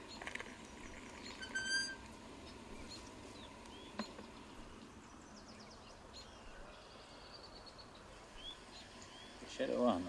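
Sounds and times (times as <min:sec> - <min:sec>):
high squeaky whistle: 0:01.4 - 0:02.0.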